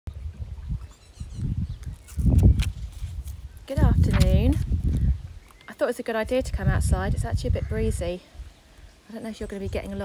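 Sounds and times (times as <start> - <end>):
wind buffeting microphone: 0.1 - 8.6.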